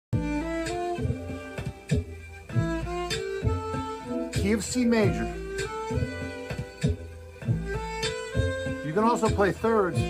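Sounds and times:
tango backing groove with bass: 0.2s - 10.0s
violin melody: 0.2s - 10.0s.

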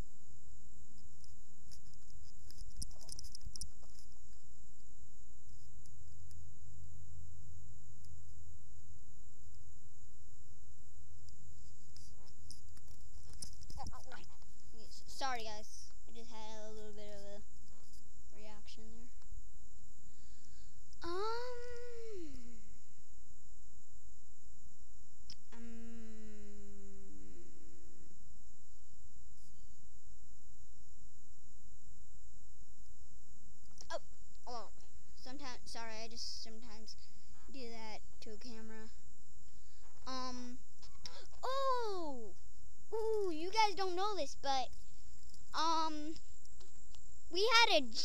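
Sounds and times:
boy making wordless vocal sounds: 21.0s - 22.6s, 25.5s - 27.3s, 40.1s - 42.3s, 43.0s - 44.7s.

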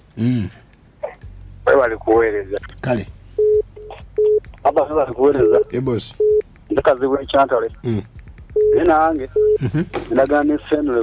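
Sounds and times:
short electronic beeps: 8.6s - 9.6s.

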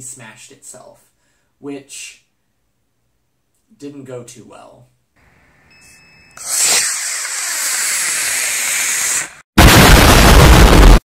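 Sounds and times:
high steady beep: 5.7s - 6.4s
rocket motor rushing hiss: 6.4s - 9.4s
distorted rush with low rumble: 9.6s - 11.0s.

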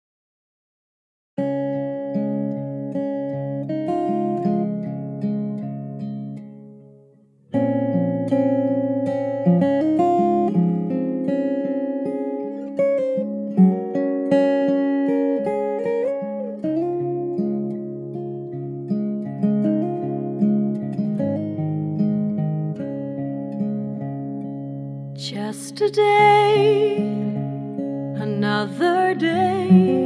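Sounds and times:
acoustic guitar picking: 1.4s - 30.0s.

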